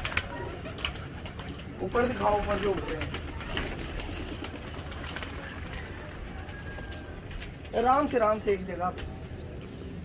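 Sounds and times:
pigeon wing claps and flutters: 0.0s - 8.1s
outdoor background: 0.0s - 10.0s.

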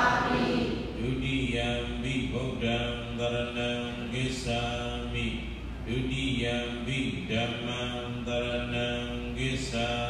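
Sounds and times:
man chanting: 0.8s - 10.0s.

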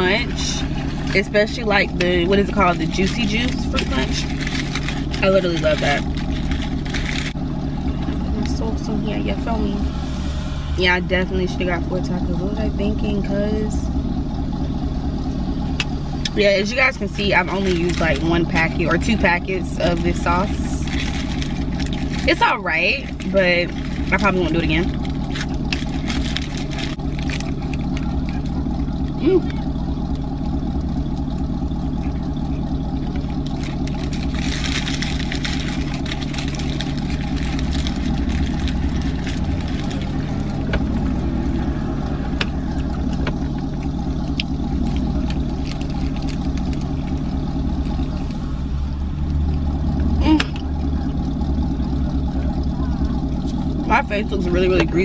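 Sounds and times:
car idling hum: 0.0s - 55.0s
paper wrapper crinkling: 2.4s - 7.4s, 17.2s - 19.2s, 19.9s - 22.4s, 23.0s - 29.6s, 31.2s - 40.7s, 43.6s - 48.4s.

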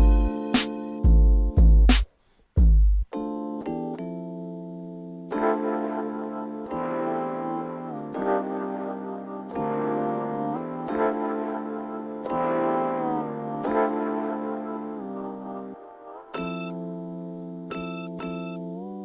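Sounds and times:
keyboard chords: 0.0s - 2.0s, 2.7s - 19.0s.

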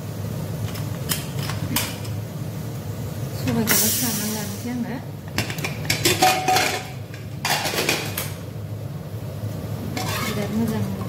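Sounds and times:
metal lid clanking: 5.4s - 8.4s, 9.9s - 11.0s
scraping rattle of lid: 10.0s - 11.0s.

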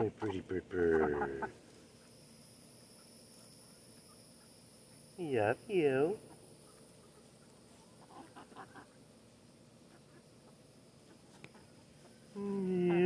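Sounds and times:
chickens clucking: 0.0s - 1.6s, 6.2s - 13.0s
insects buzzing: 0.0s - 13.0s.

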